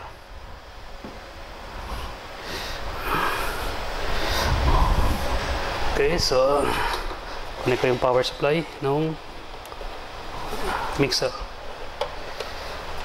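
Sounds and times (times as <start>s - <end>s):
low rumble: 3.6s - 7.5s.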